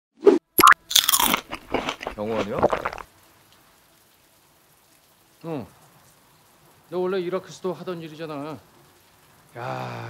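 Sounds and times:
cartoon pops: 0.2 - 3.0
crunchy munching: 0.6 - 3.1.

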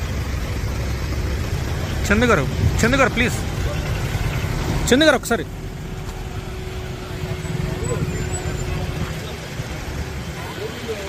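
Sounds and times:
suv engine rumble: 0.0 - 11.0
people talking nearby: 1.2 - 11.0.

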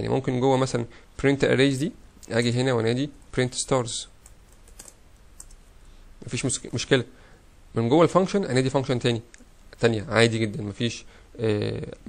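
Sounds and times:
keystrokes on computer keyboard: 4.2 - 5.6.

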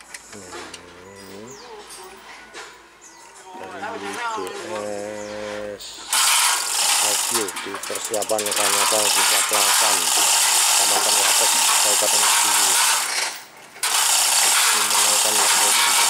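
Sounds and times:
chain hoist rattling and clicking: 6.1 - 16.0.

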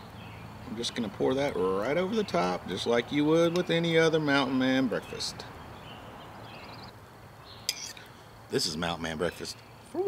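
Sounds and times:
fork clinking against metal bowl: 7.7 - 8.1.

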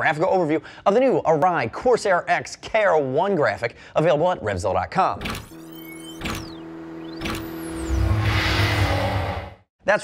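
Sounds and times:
steady synthetic hum: 5.4 - 9.6
high tones sweeping: 5.4 - 9.7
low synthetic swell: 5.7 - 9.7.

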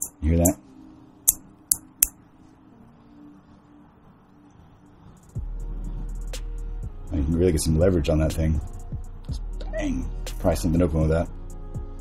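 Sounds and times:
metal pry bar clinking: 0.0 - 0.6
background music with low tone: 0.0 - 12.0.

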